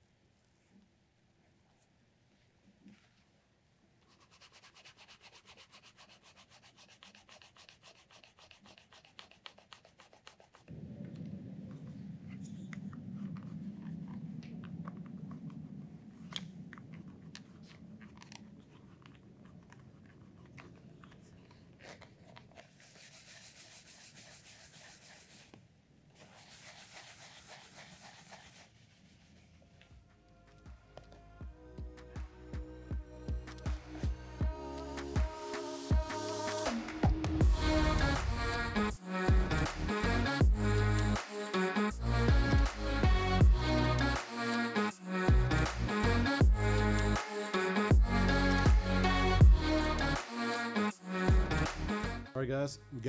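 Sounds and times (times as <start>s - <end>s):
cloth rubbing on leather: 4.0s - 10.8s, 17.0s - 30.0s.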